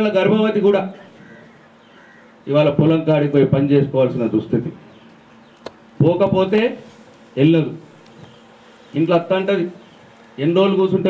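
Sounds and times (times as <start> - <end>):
man speaking into a microphone: 0.0 - 1.1, 2.5 - 4.8, 6.0 - 7.9, 8.9 - 11.0.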